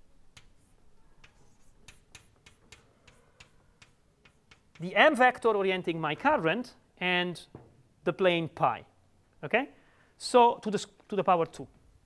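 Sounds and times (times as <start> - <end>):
chalk tapping on blackboard: 0.3 - 5.0.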